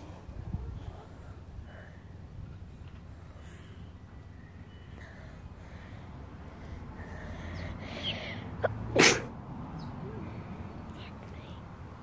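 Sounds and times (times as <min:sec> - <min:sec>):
person sneezing: 0:08.6 - 0:09.3.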